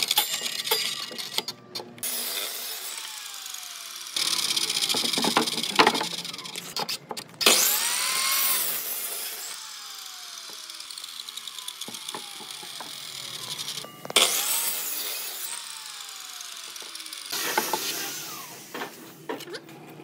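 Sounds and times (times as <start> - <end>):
miter saw cutting wood: 0.0 - 19.4.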